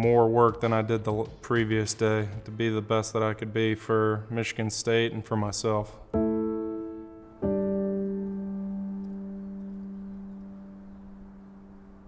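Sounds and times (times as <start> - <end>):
piano chord: 6.1 - 12.0.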